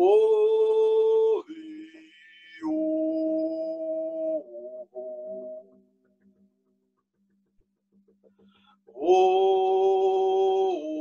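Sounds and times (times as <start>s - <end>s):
man singing long held notes: 0.0s - 5.4s, 9.0s - 11.0s.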